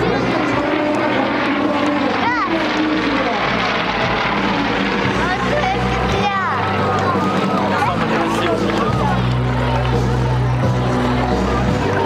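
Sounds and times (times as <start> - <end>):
propeller planes droning overhead: 0.0 - 12.0.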